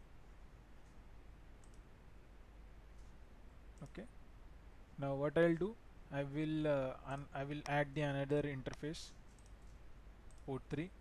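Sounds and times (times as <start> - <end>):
computer mouse clicks: 1.6 - 1.9, 2.9 - 3.2, 8.7 - 10.5.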